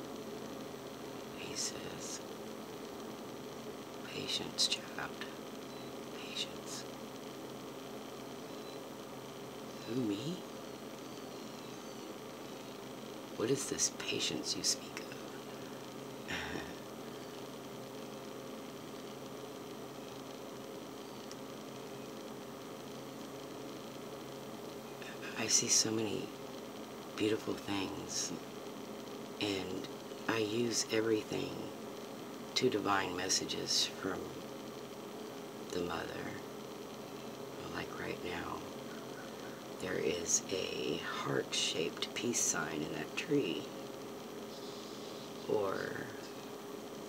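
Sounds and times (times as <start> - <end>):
faint background hiss: 0.0 - 47.0
low electrical hum: 0.0 - 47.0.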